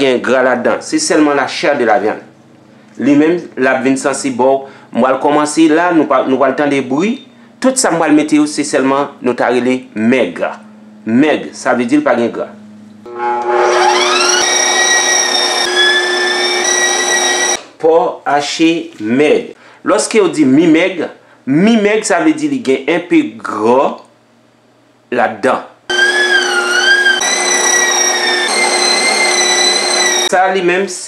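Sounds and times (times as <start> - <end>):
electric meat grinder motor whine: 13.1 - 17.6, 25.9 - 30.3.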